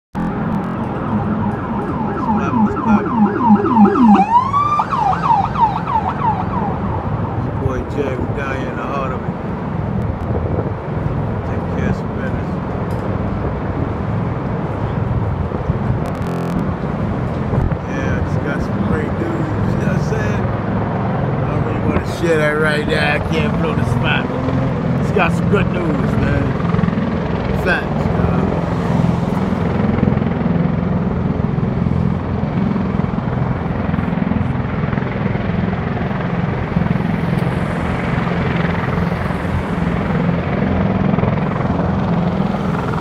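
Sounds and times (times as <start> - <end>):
emergency siren warbling yelp: 0.2 - 7.9, 16.1 - 16.8
city traffic din: 0.2 - 43.0.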